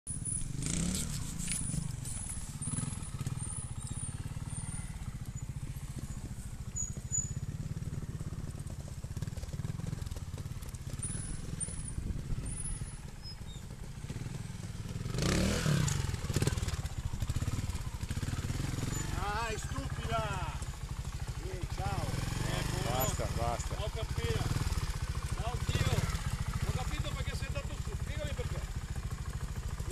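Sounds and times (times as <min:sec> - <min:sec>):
motorcycle engine idling: 0:00.1 - 0:29.9
voices: 0:15.8 - 0:28.8.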